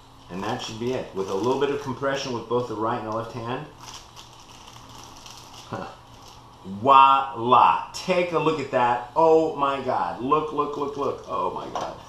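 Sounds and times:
plastic film crinkling: 0:00.2 - 0:06.6, 0:10.5 - 0:12.0.

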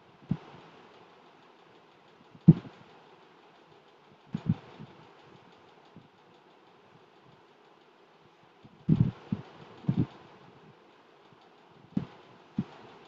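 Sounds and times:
steady background hiss: 0:00.0 - 0:13.0.

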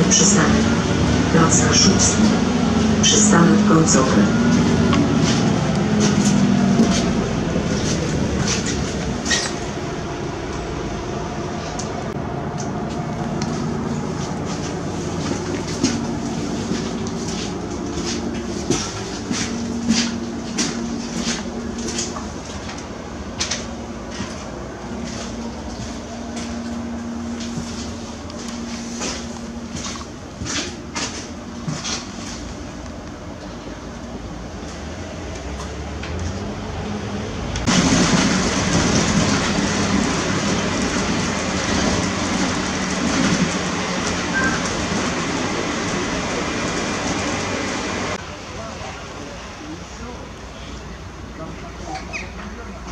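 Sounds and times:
bus engine hum: 0:00.0 - 0:52.9
road noise: 0:00.0 - 0:52.9.

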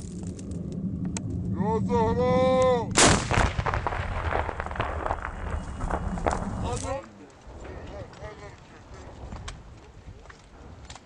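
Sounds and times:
rumbling echo: 0:00.0 - 0:06.9
people talking: 0:01.5 - 0:02.9, 0:06.6 - 0:08.8
gun firing blast: 0:03.0 - 0:06.6.

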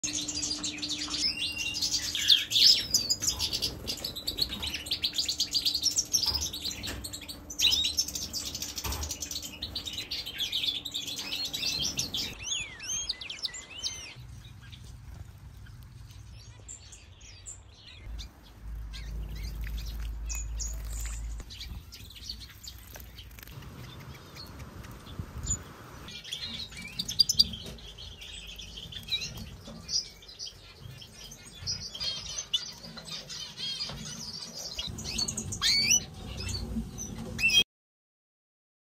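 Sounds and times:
goldfinches twittering and singing: 0:00.1 - 0:14.8, 0:16.5 - 0:37.6
low rumble: 0:18.1 - 0:22.0.

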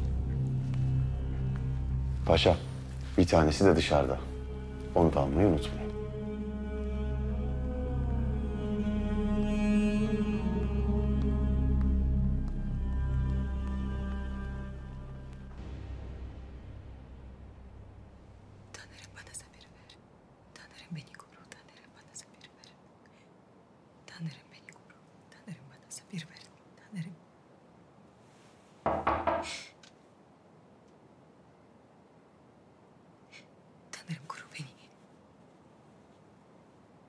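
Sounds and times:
low music: 0:00.0 - 0:19.1
woman whispering: 0:18.7 - 0:23.2, 0:24.0 - 0:27.3, 0:33.3 - 0:35.1.

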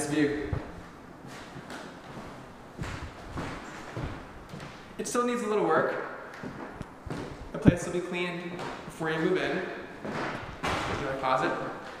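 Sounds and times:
footsteps on wooden floor: 0:00.5 - 0:05.0, 0:06.3 - 0:07.9.

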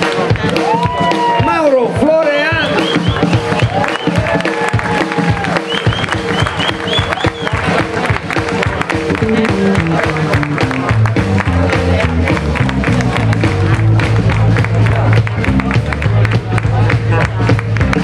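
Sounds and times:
electric blues band: 0:02.8 - 0:18.0
low bass notes stepping: 0:04.8 - 0:18.0.

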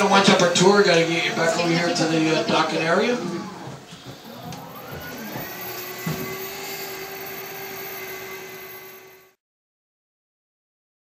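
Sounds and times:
boat motor whirring: 0:00.0 - 0:09.4.

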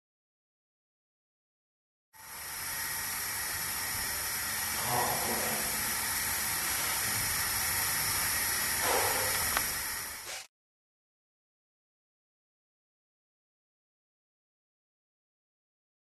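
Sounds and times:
urine stream into toilet: 0:02.2 - 0:10.3.

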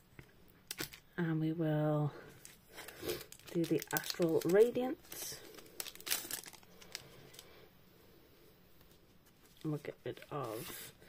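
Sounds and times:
foil wrapper crinkling: 0:00.7 - 0:01.0, 0:02.4 - 0:07.5.

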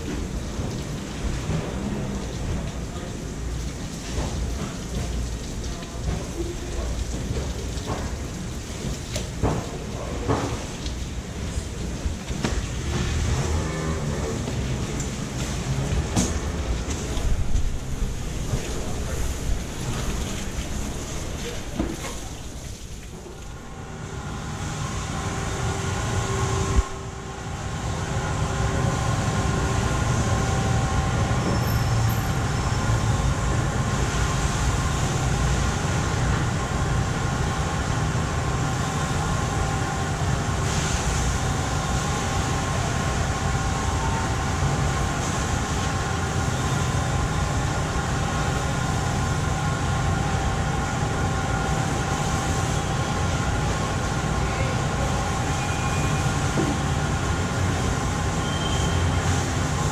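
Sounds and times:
mechanical drone with hum tones: 0:23.2 - 0:59.9.

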